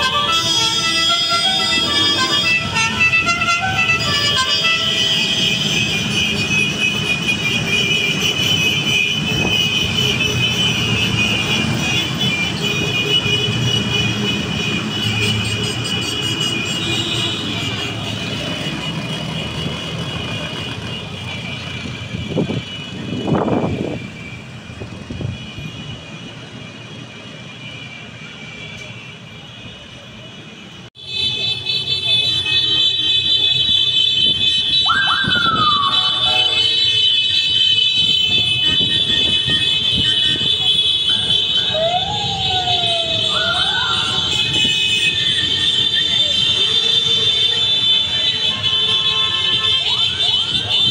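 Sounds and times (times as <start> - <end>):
engine rumble of passing vehicles: 0.0 - 50.9
vehicle horns honking: 0.0 - 50.9.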